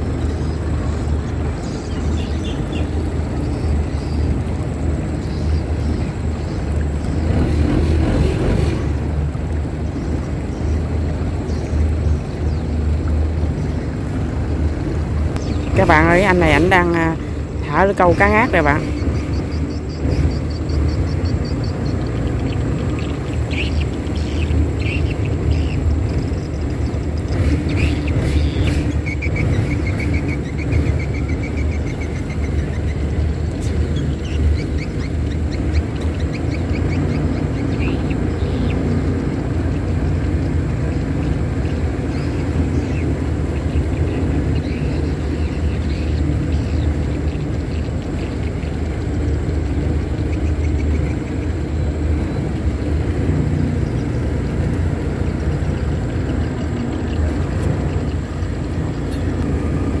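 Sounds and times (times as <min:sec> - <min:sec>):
boat engine running: 0:00.0 - 1:00.0.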